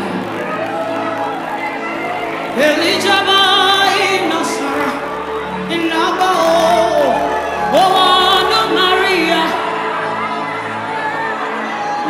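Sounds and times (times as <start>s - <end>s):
crowd voices: 0.0s - 12.0s
people singing: 2.0s - 12.0s.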